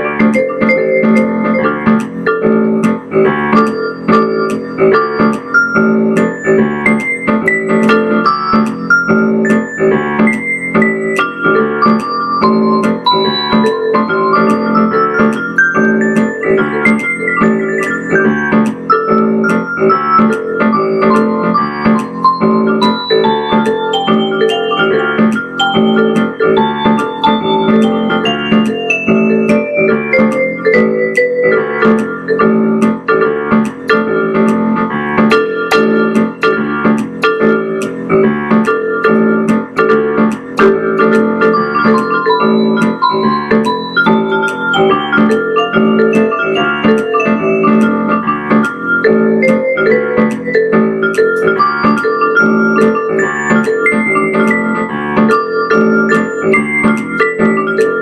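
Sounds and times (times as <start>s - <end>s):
piano music: 0.0s - 58.0s.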